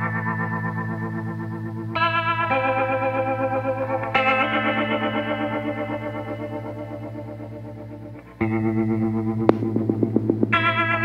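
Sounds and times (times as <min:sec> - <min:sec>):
electric guitar chords with chorus: 0:00.0 - 0:11.0.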